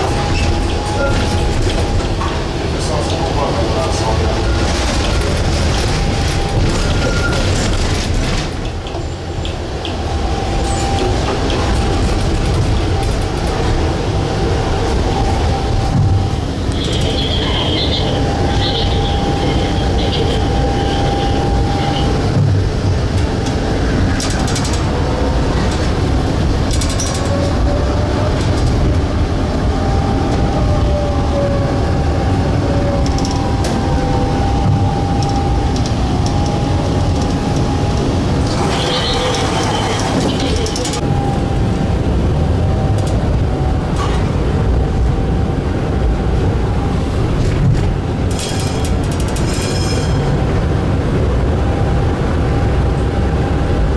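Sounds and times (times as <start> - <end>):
tram wheels rumbling on rails: 0.0 - 53.9
high wheel squeals: 38.5 - 40.7.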